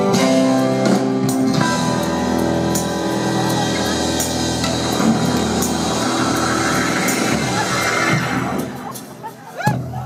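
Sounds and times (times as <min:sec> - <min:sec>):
drums: 0:00.0 - 0:10.0.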